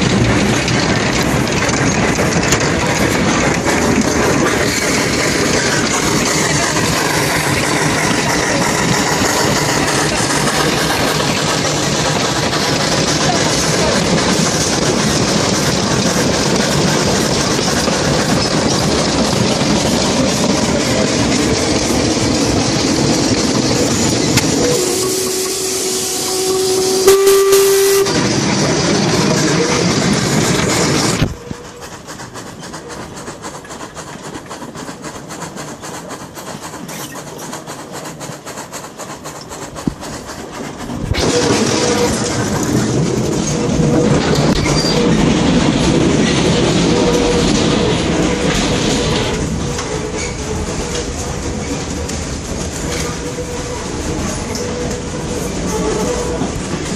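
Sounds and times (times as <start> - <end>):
steam locomotive rushing steam: 0.0 - 56.9
steam whistle: 24.5 - 28.2.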